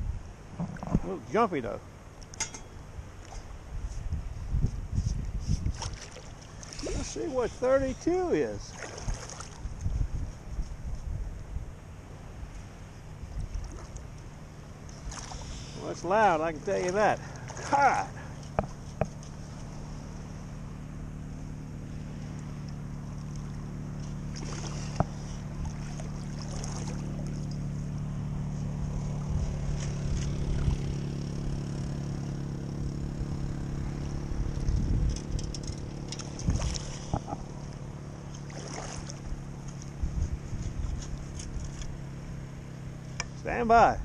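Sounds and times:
low motor drone: 0:00.0 - 0:44.0
sand scoop splashing in water: 0:24.3 - 0:27.7.

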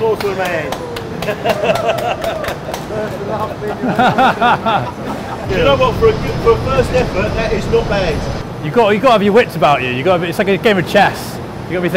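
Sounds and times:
hand claps: 0:00.0 - 0:04.1
men laughing heartily: 0:01.0 - 0:06.7.

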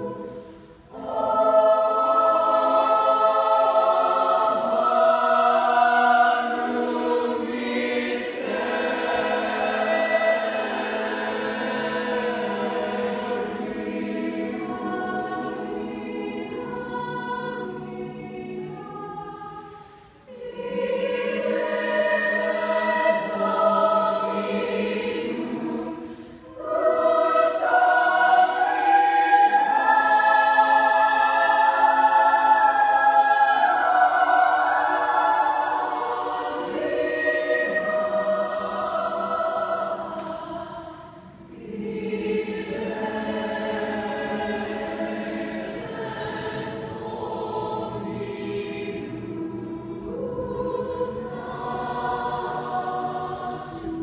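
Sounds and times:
choir singing a cappella: 0:00.0 - 0:54.0.

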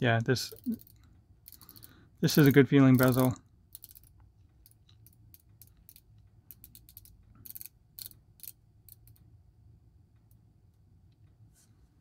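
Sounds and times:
watch bezel clicking: 0:00.6 - 0:09.2.

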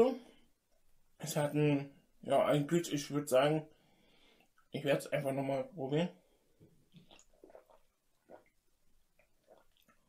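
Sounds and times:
man sipping and swallowing: 0:06.5 - 0:10.0.

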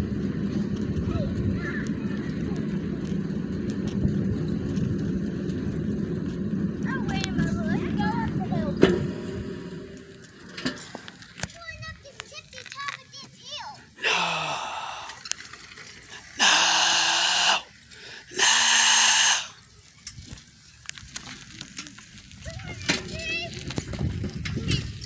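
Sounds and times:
person yelling: 0:14.0 - 0:15.2, 0:16.4 - 0:17.7, 0:18.3 - 0:19.6.

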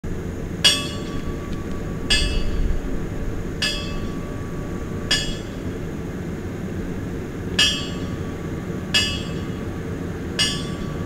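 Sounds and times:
low background rumble: 0:00.0 - 0:11.0
sharp metallic clink: 0:10.4 - 0:11.0.

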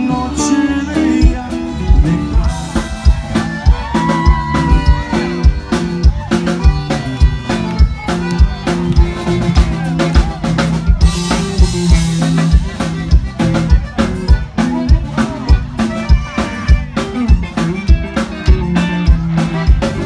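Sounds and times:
electric bass line: 0:00.0 - 0:20.0
electric guitar: 0:00.0 - 0:20.0
keyboards: 0:00.0 - 0:20.0
drum kit with strong kick drum: 0:00.9 - 0:20.0.

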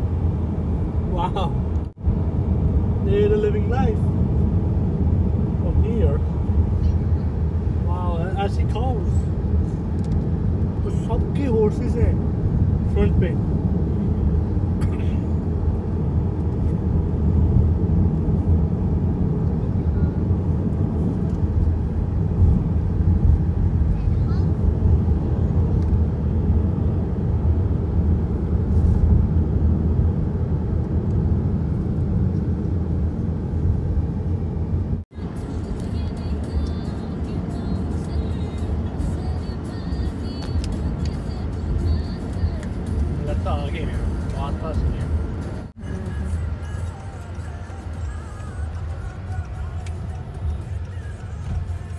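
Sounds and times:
car road and engine rumble: 0:00.0 - 0:51.9
faint music: 0:35.2 - 0:51.9.

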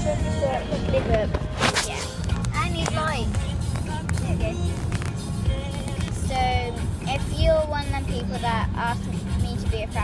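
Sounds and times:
car cabin rumble: 0:00.0 - 0:10.0
music: 0:00.0 - 0:10.0
voice: 0:06.2 - 0:10.0.

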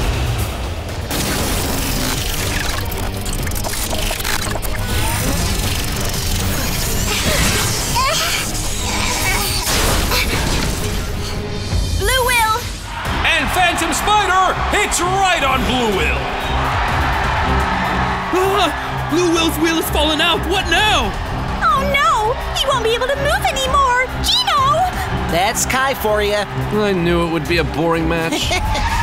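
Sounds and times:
dramatic background music: 0:00.0 - 0:29.0.

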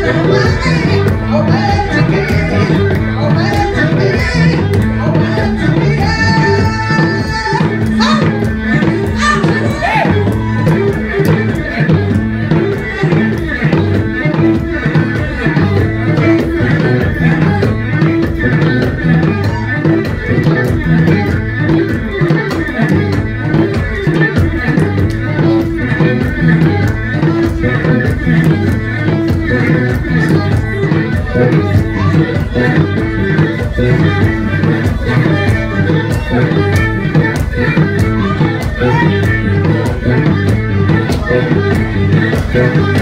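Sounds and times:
drums steady rhythm: 0:00.0 - 0:43.0
plucked bass lyre: 0:00.0 - 0:43.0
violin: 0:00.0 - 0:43.0.

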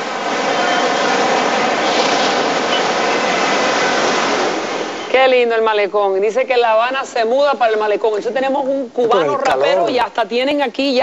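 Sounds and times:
road traffic passing: 0:00.0 - 0:08.9.

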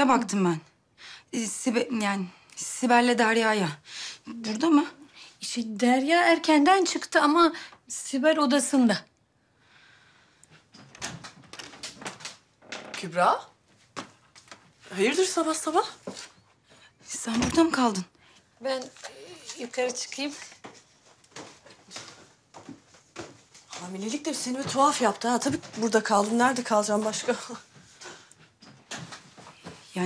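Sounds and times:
door clicks and knocks: 0:10.8 - 0:13.1
footsteps on wooden stairs: 0:20.6 - 0:27.5.

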